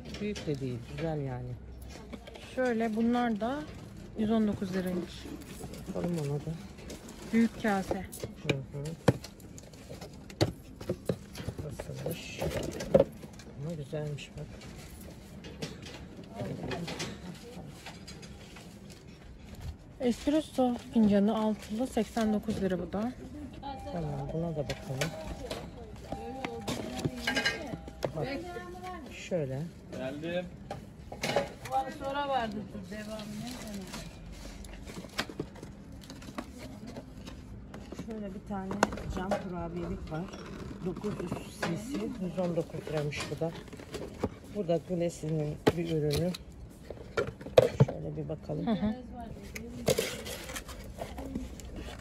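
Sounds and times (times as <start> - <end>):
cardboard scraping: 49.7 - 52.0.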